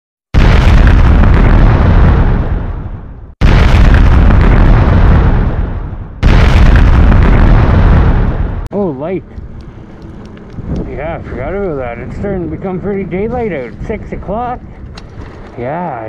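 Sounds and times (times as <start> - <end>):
explosions with deep rumble: 0.3 - 8.7.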